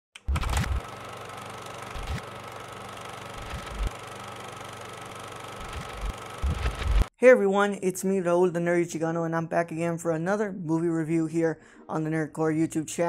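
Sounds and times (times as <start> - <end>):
low buzzing hum: 3.4 - 4.1, 5.6 - 7.1.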